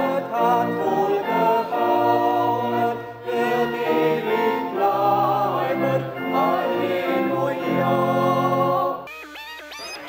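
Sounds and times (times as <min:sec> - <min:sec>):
group singing a hymn: 0:00.0 - 0:09.1.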